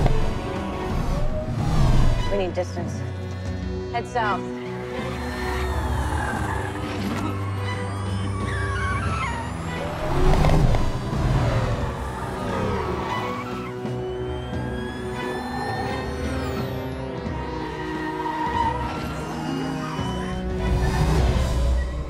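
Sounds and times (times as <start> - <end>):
film score music: 0.0 - 22.0
tyres squealing: 4.6 - 22.0.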